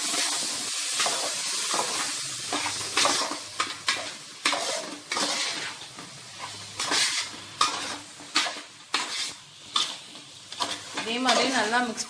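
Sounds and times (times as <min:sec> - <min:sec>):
food sizzling: 0:00.0 - 0:12.0.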